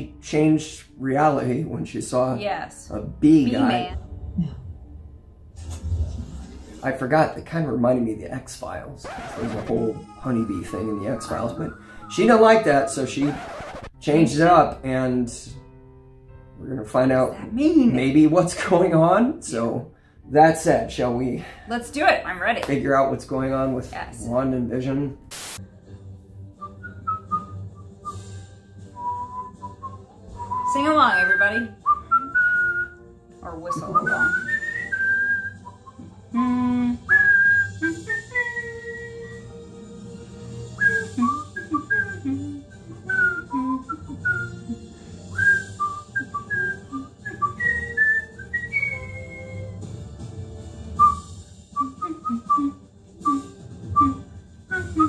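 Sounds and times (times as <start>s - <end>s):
tv theme music: 0.0s - 55.0s
man whistling a tune: 10.2s - 12.6s, 26.6s - 39.8s, 40.6s - 49.9s, 51.0s - 55.0s.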